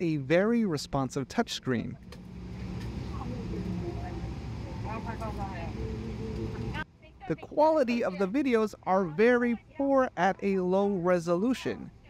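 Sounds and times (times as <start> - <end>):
airplane cabin low rumble: 2.0 - 6.9.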